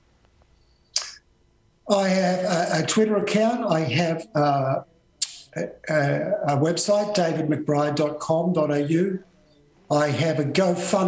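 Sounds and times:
faint steady hum: 0:00.0 - 0:11.0
short sharp hissing noise: 0:01.0 - 0:01.2.

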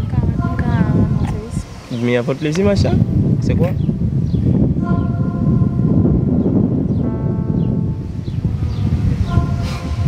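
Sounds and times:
heavy low rumble: 0:00.0 - 0:10.0
held keyboard chords: 0:06.1 - 0:09.6.

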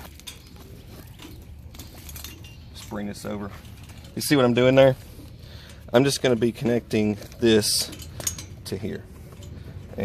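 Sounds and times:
low steady background rumble: 0:00.0 - 0:10.0.

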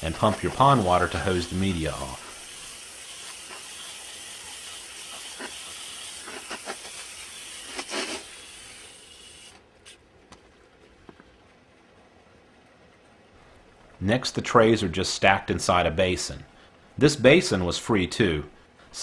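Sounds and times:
hose spraying water on rocks: 0:00.0 - 0:09.6.

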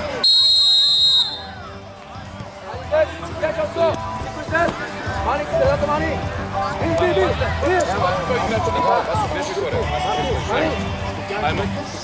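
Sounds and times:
referee's whistle blast: 0:00.2 - 0:01.6.

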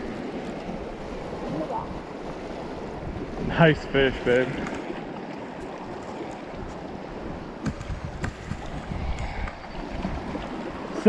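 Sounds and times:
river current rushing: 0:00.0 - 0:11.0.

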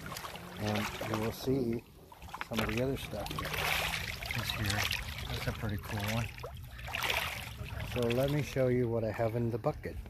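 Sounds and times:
water splashing: 0:00.0 - 0:09.8
water sloshing and trickling: 0:00.0 - 0:10.0.

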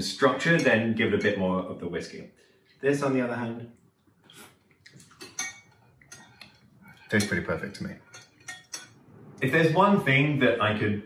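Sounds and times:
spoon clink: 0:05.2 - 0:06.4, 0:07.1 - 0:09.0.

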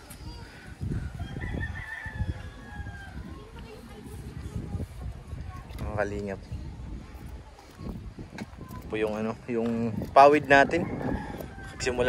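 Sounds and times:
wind rumble on microphone: 0:00.0 - 0:12.0
rooster crowing: 0:01.2 - 0:03.2, 0:10.8 - 0:12.0.

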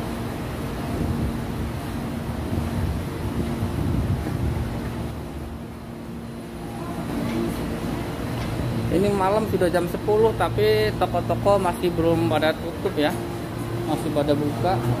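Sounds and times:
outdoor market and street noise: 0:00.0 - 0:15.0
steady hum: 0:00.0 - 0:15.0.

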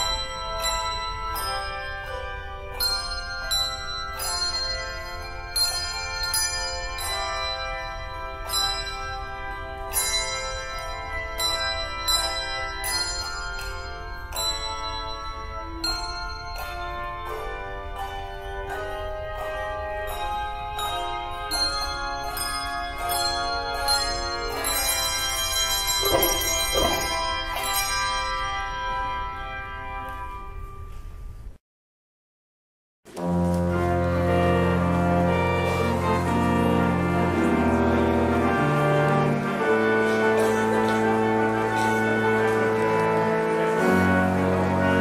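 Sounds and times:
handbell choir playing: 0:00.0 - 0:30.6, 0:34.1 - 0:45.0.

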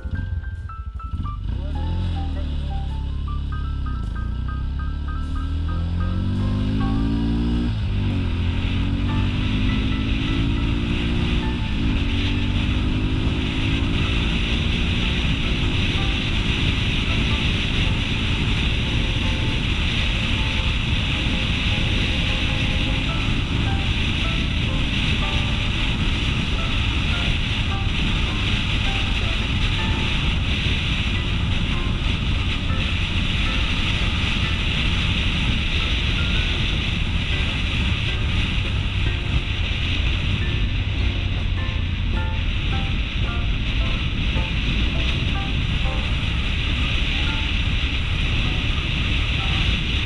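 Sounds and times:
light background music: 0:00.0 - 0:50.0
motorcycle engine accelerating: 0:00.0 - 0:50.0
wind rush: 0:05.2 - 0:50.0.

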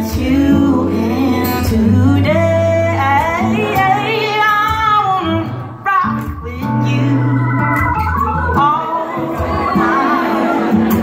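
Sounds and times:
woman singing: 0:00.0 - 0:10.6
electric guitar: 0:00.0 - 0:11.0.

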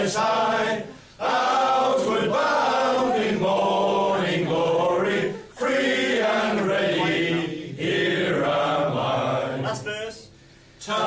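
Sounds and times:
men singing in unison: 0:00.0 - 0:09.6.

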